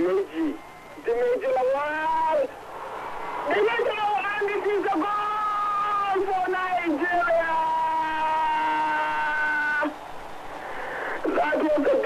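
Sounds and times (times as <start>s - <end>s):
stadium crowd noise: 0.0s - 12.0s
commentator goal cry: 3.5s - 10.0s.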